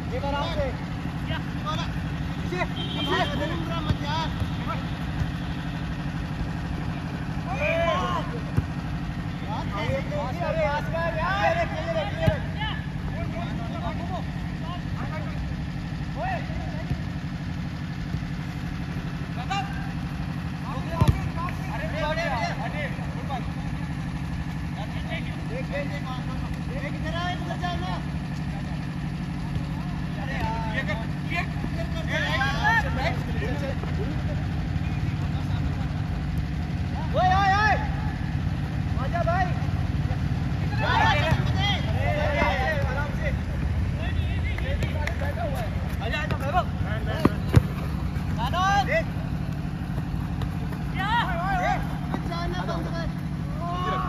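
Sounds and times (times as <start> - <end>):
players shouting: 0.4 - 24.6, 28.8 - 54.0
football being kicked: 3.7 - 5.5, 8.4 - 8.9, 12.1 - 12.6, 20.8 - 21.7, 41.1 - 41.6, 44.7 - 48.4, 49.5 - 51.0.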